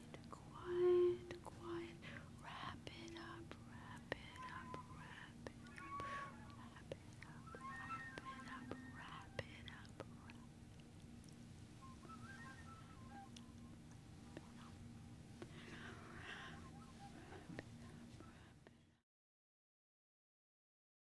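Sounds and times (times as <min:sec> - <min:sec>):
woman whispering into microphone: 0:00.0 - 0:10.5, 0:14.3 - 0:14.8.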